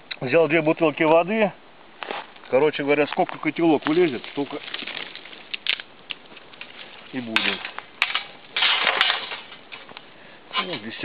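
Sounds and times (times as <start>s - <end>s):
dry twigs snapping and crunching: 3.1s - 10.1s
sharp cracks of twigs: 3.1s - 10.1s.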